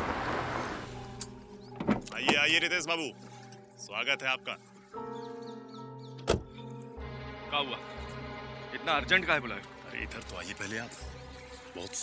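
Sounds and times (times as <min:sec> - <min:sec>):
background music: 0:00.1 - 0:12.0
car door slamming: 0:06.2 - 0:06.6.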